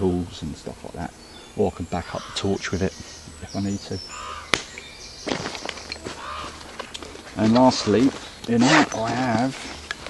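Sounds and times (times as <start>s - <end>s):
rustles and knocks of packing: 5.2s - 10.0s.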